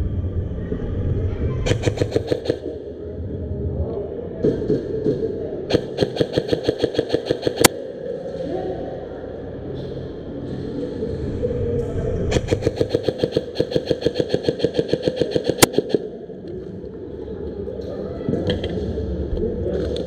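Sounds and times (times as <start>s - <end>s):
airsoft guns firing bursts: 1.7s - 2.7s, 5.7s - 7.7s, 12.3s - 16.1s
sharp crack: 12.3s - 16.1s.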